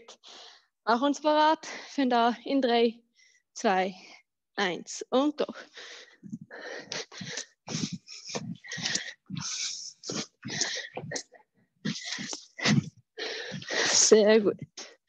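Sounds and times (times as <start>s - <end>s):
person breathing hard: 5.6s - 14.1s.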